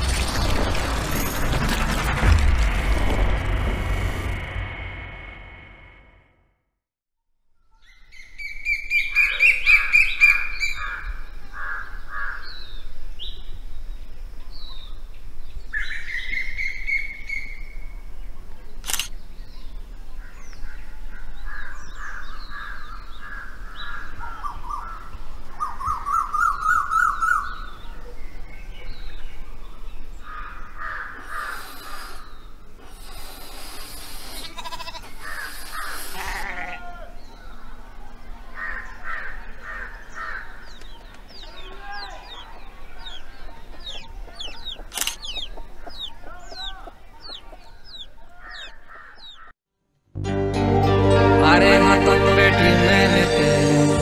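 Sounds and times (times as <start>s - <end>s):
birds chirping: 7.8s - 49.5s
harsh bird calls: 19.6s - 49.5s
sharp click: 44.5s - 45.6s.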